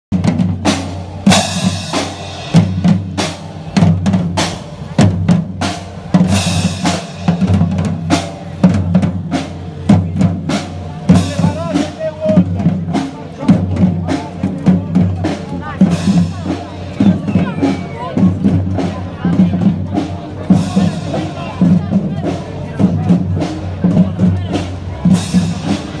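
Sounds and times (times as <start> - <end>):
bass drums: 0.1 - 26.0
snare drums: 0.1 - 26.0.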